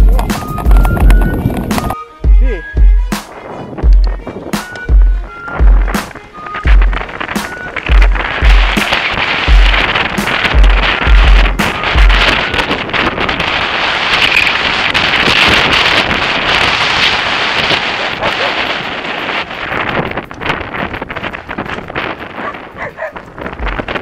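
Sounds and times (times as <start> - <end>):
bike rattling over rough ground: 0.0 - 2.0, 5.6 - 24.0
wind rushing over microphone: 0.0 - 2.0, 2.6 - 24.0
deep bass thumps: 7.9 - 8.8, 9.4 - 12.4.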